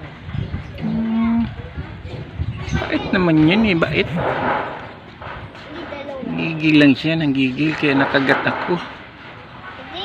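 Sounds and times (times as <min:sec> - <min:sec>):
man humming: 0:00.8 - 0:01.6.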